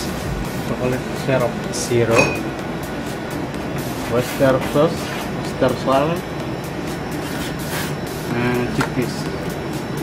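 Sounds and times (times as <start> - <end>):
background hum and hiss: 0.0 - 10.0
background music: 0.0 - 10.0.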